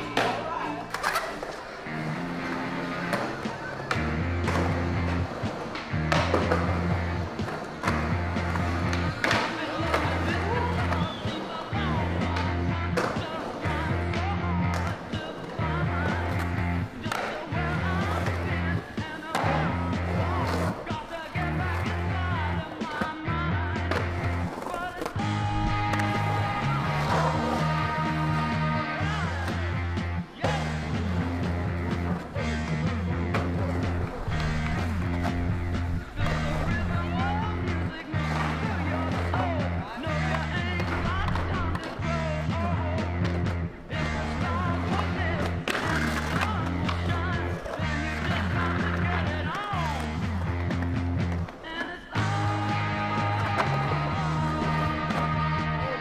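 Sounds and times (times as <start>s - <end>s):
skateboard wheels rolling on concrete: 0.0s - 56.0s
music with bass beat and singing: 1.8s - 56.0s.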